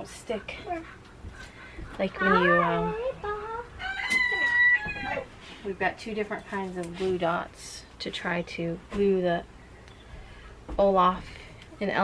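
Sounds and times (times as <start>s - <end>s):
rooster crowing: 3.7s - 5.3s.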